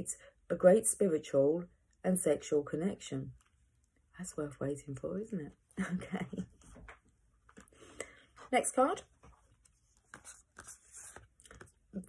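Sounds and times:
cards rustling and scraping: 6.6s - 12.0s.

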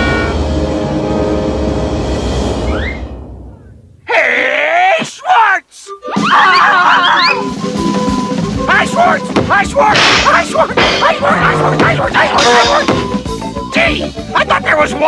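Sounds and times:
voices groaning and screaming: 4.1s - 7.4s, 10.2s - 12.9s.

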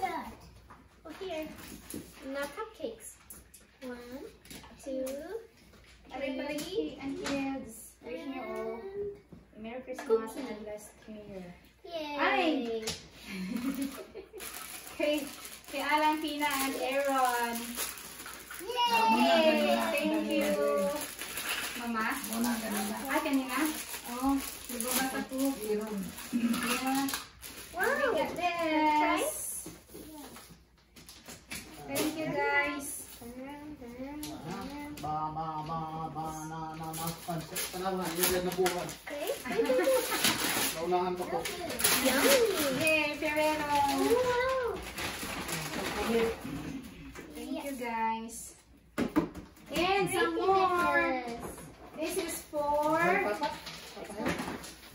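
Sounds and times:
gift-wrap paper rustling: 13.2s - 33.4s, 36.8s - 47.8s, 52.0s - 54.9s
child's high voice: 18.6s - 21.1s, 43.6s - 44.9s.

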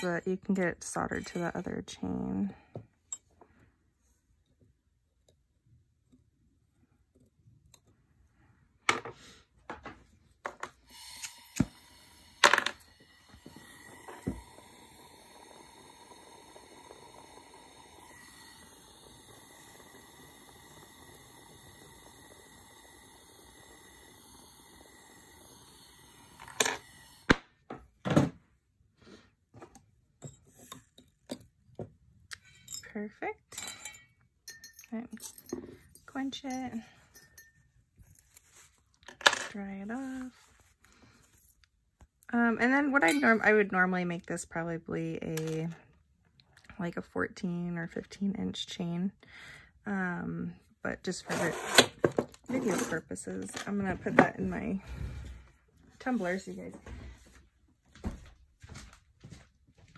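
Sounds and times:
torch burning with low hiss: 10.8s - 27.4s.

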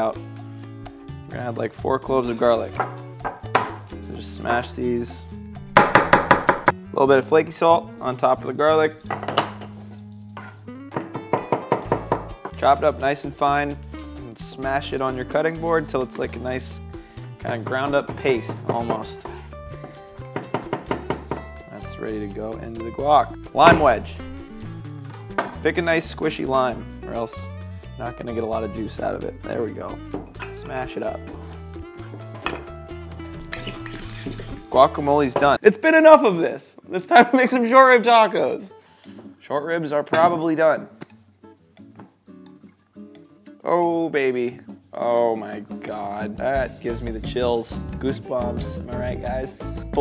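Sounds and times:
background music: 0.0s - 50.0s
knife chopping on wooden board: 5.7s - 6.8s, 11.0s - 12.3s, 20.3s - 21.5s, 23.6s - 24.1s
utensil scraping ceramic bowl: 33.4s - 34.7s.

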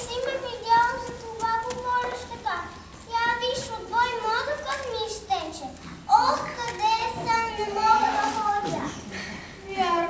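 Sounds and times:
child speaking: 0.0s - 9.1s.

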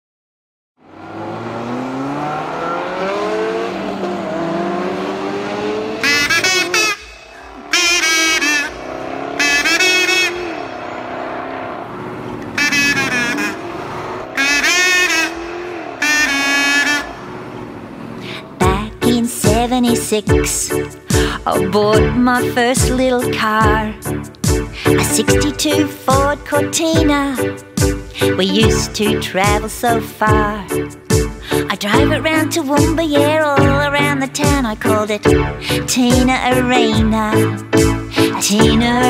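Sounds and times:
car engine revving: 0.8s - 29.9s.

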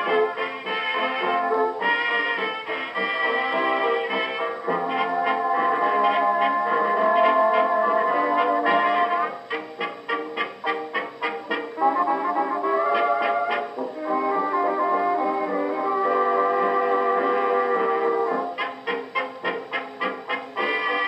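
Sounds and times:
jazz dance orchestra with brass: 0.0s - 21.0s.

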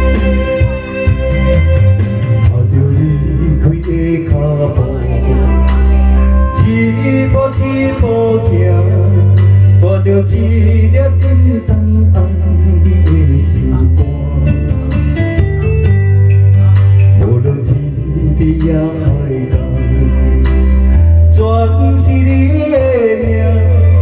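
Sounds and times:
bass line: 0.0s - 24.0s
guitar: 0.0s - 24.0s
man singing through microphone: 2.4s - 15.2s, 16.5s - 24.0s.

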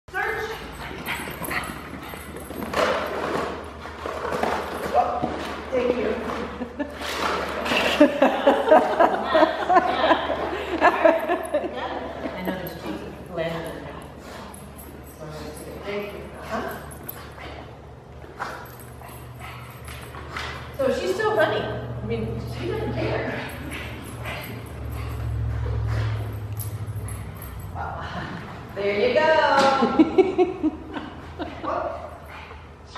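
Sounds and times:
dog sniffing: 23.3s - 27.8s.

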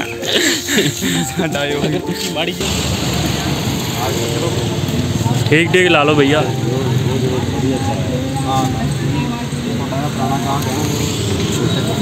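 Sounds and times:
passing traffic rush: 0.6s - 12.0s.

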